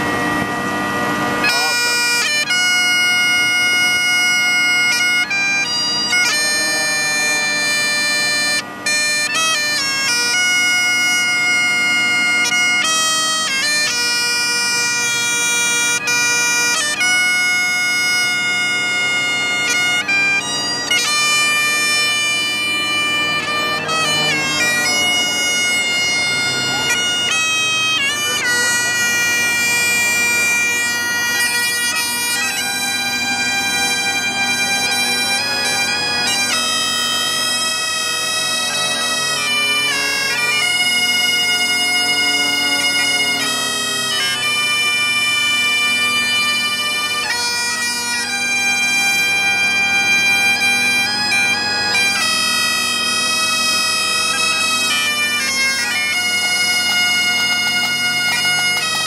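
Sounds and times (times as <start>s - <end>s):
bagpipe drones: 0.0s - 59.0s
bagpipe melody: 0.0s - 59.0s.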